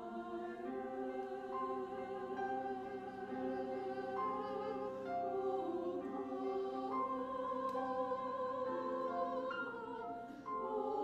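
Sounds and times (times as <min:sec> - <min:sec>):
church choir singing: 0:00.0 - 0:11.0.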